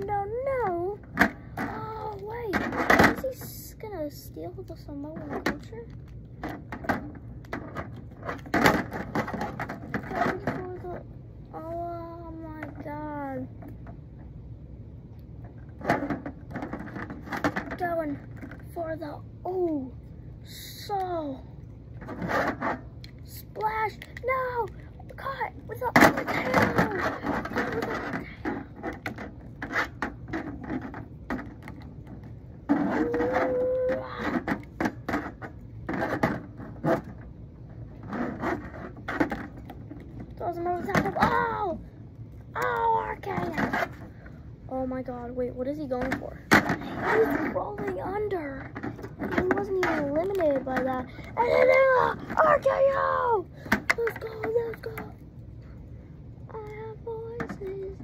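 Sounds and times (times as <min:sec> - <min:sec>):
boy making vocal sound effects: 0:32.9 - 0:34.3.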